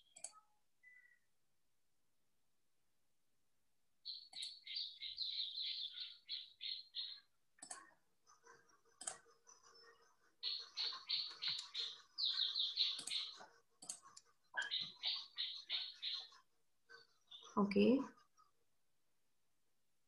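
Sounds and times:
birds chirping: 4.0s - 18.4s
sharp clicks: 12.9s - 14.0s.

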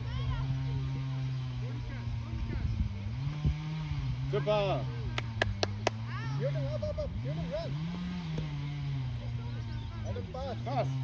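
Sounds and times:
low motor-like hum: 0.0s - 11.0s.

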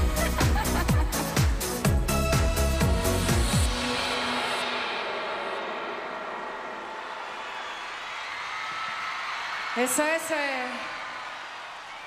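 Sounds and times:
band music: 0.0s - 4.9s
crowd cheering and clapping: 6.0s - 12.0s
woman speaking into a microphone: 9.8s - 10.9s.

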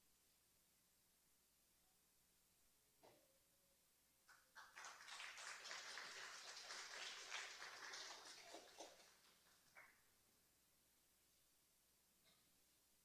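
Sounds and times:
audience applause: 4.6s - 10.0s.

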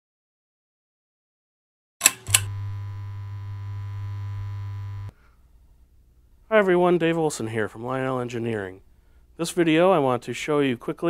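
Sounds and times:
low synthesized hum: 2.3s - 5.1s.

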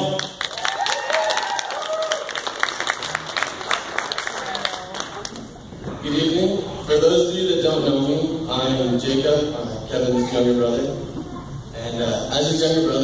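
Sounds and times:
guests applauding: 0.0s - 5.6s.

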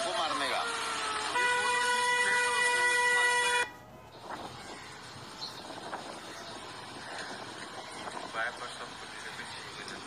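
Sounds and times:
street noise: 0.0s - 10.0s
steady horn tone: 0.6s - 3.8s.

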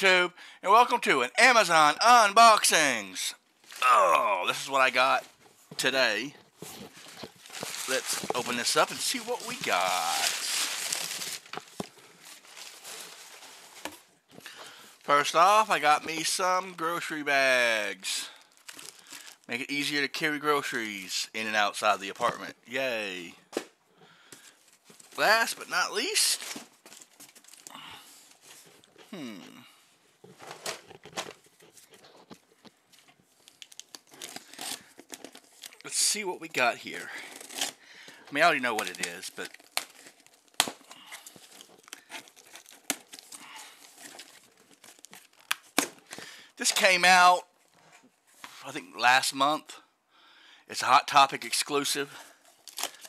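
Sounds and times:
paper rustling: 6.5s - 14.1s
packing paper crumpling: 6.5s - 16.4s, 18.2s - 19.5s, 30.3s - 46.9s, 52.2s - 53.0s
packing tape tearing: 33.4s - 35.9s, 37.2s - 37.8s, 38.6s - 46.2s, 52.5s - 53.0s.

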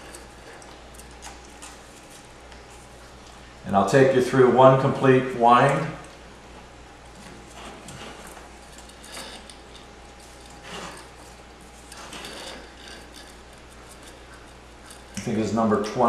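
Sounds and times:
wire scraping and ticking: 0.0s - 4.2s, 4.8s - 16.0s
low steady hum: 0.0s - 16.0s.

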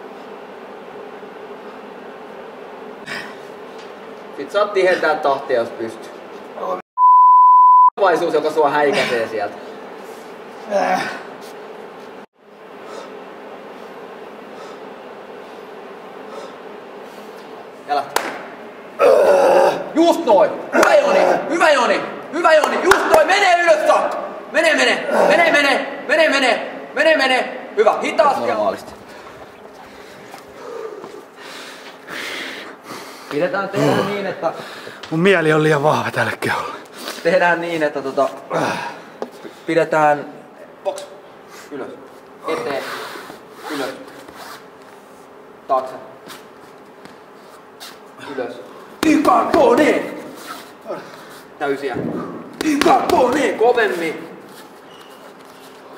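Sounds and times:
man grunting with strain: 10.7s - 11.3s, 19.0s - 20.0s, 25.0s - 25.5s, 30.6s - 31.2s, 33.7s - 34.2s, 38.5s - 39.1s.

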